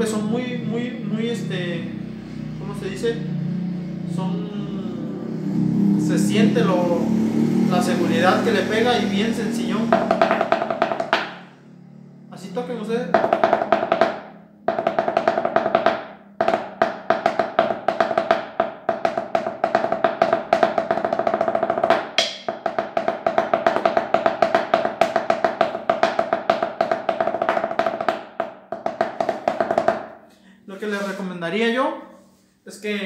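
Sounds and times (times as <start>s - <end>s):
muffled snare drum beat: 9.9s - 11.3s, 13.2s - 29.9s.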